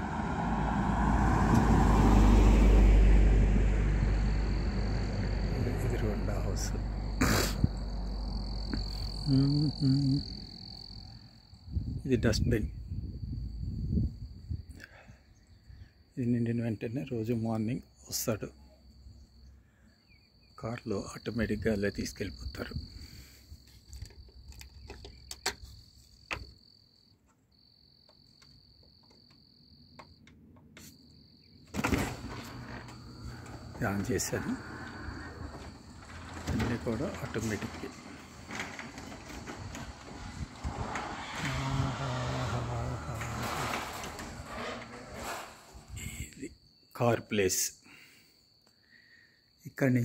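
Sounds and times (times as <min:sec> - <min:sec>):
woman humming: 0:09.2 - 0:10.4
garage door opener running: 0:31.8 - 0:45.9.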